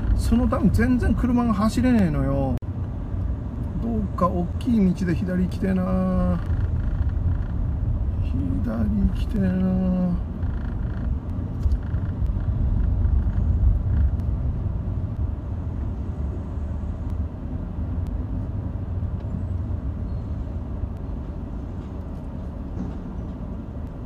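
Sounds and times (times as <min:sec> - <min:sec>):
car driving in traffic from inside: 0:00.0 - 0:24.0.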